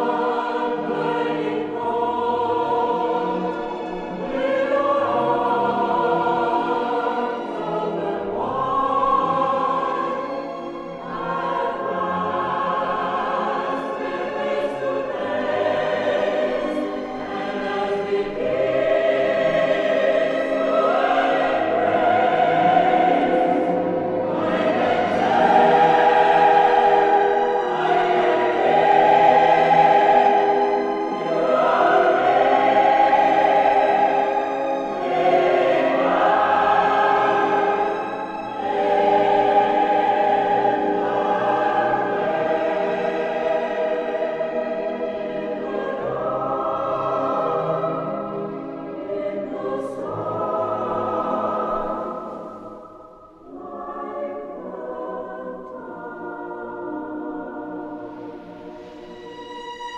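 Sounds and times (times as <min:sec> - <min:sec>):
choir singing sustained chords: 0:00.0 - 0:59.9
orchestral strings: 0:00.0 - 0:59.9.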